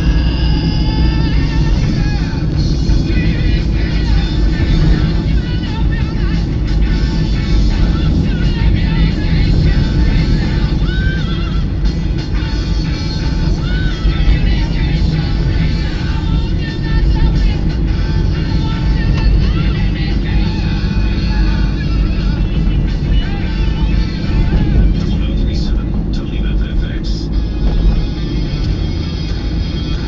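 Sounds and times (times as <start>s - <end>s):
car road and engine rumble: 0.0s - 30.0s
music with singing voice: 0.0s - 30.0s.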